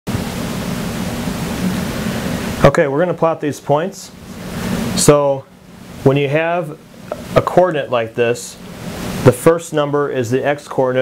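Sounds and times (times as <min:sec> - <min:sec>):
loud steady hiss: 0:00.1 - 0:11.0.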